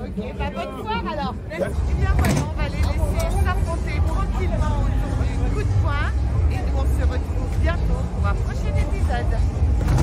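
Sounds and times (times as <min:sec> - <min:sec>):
woman talking: 0:00.4 - 0:09.4.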